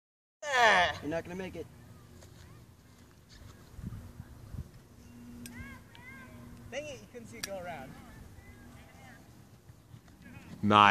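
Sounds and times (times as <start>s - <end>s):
faint low hum: 0.9s - 10.9s.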